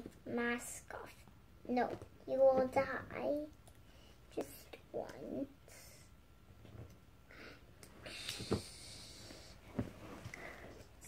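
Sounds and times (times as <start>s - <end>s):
child hissing: 8.1s - 9.6s.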